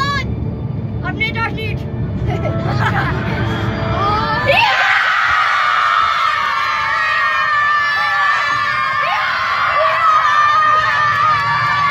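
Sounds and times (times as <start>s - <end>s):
boys shouting and cheering: 4.0s - 11.9s.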